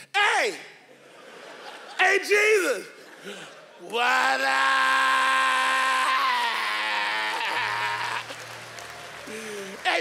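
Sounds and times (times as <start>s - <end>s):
audience laughter and applause: 0.9s - 2.2s, 6.6s - 10.0s.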